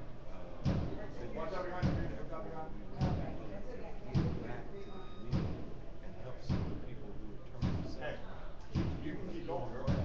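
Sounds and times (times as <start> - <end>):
people talking: 0.8 - 10.0
heavy thumps: 8.7 - 9.2.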